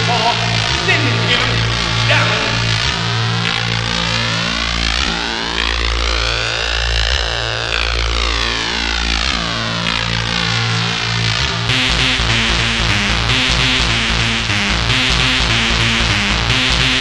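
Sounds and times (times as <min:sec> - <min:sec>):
pulsing bass line: 0:00.0 - 0:17.0
siren-like synth sweep: 0:00.0 - 0:17.0.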